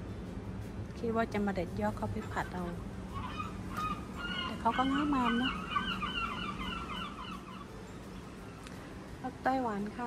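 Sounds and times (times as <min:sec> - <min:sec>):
bird warbling whistle: 0:03.1 - 0:07.7.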